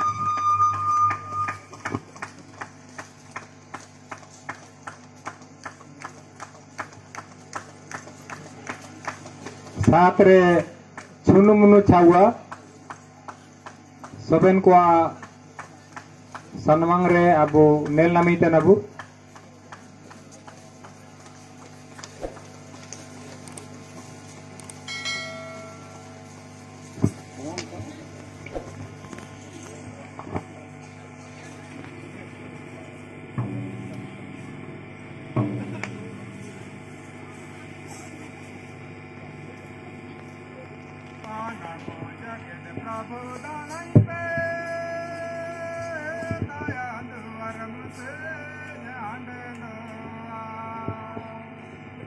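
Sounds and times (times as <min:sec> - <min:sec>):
loud held high tone: 0:00.0 - 0:01.8, 0:24.6 - 0:27.9
low steady hum: 0:00.0 - 0:52.0
hand clappers with jingles: 0:00.3 - 0:09.9, 0:24.6 - 0:26.6.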